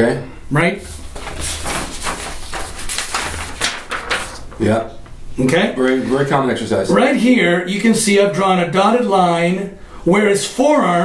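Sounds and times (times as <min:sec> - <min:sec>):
paper sheets rustling: 0:00.8 - 0:05.0.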